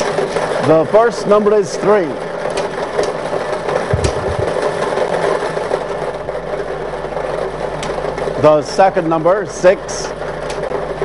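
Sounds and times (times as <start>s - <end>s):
ball machine whirring: 3.0s - 6.0s
low thump: 3.9s - 4.7s.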